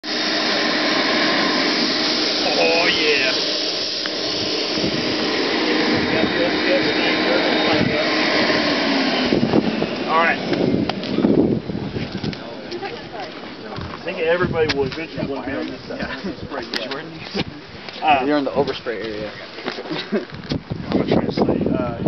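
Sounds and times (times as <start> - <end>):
electric blower running: 0.0 - 17.5.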